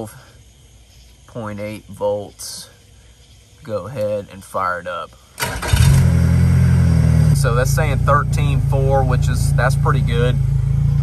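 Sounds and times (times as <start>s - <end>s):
outboard engine starting and idling: 5.4s - 6.4s.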